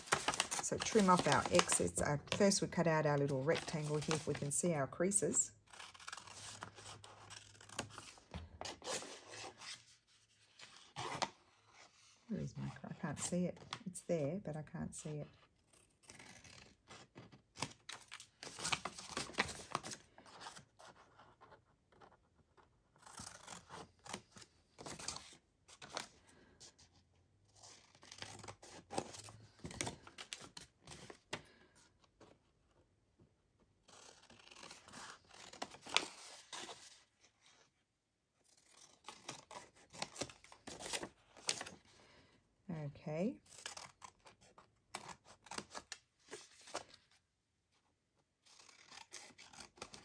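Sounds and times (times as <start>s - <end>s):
scissors snipping paper: 0.0s - 4.5s, 48.4s - 50.0s.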